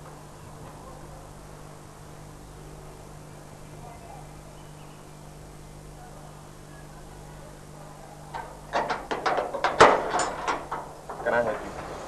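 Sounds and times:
faint steady hum: 0.0s - 12.0s
padlock and latch clanking: 8.3s - 11.3s.

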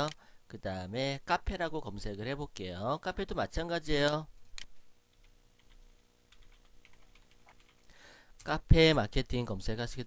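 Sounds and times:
computer keyboard typing: 5.1s - 7.9s.

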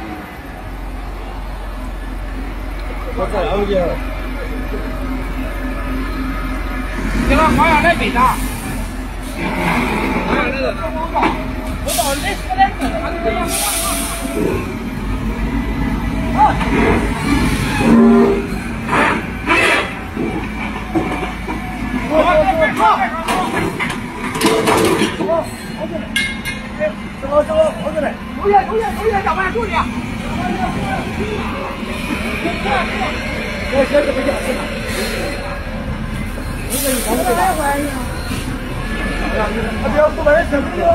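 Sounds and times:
diesel engine rumble: 0.0s - 40.9s.

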